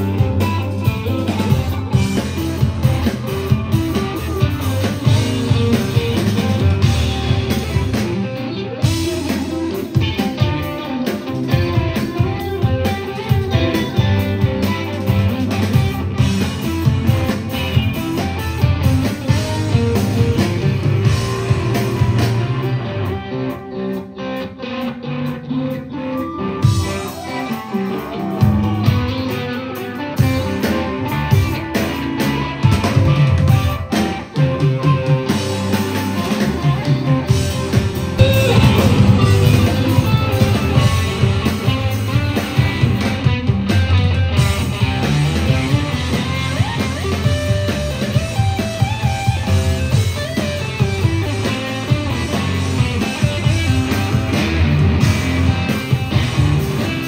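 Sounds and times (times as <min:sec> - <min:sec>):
drum kit: 0:00.0 - 0:24.1, 0:25.7 - 0:57.0
bass guitar: 0:00.0 - 0:57.0
electric guitar lines: 0:00.0 - 0:57.0.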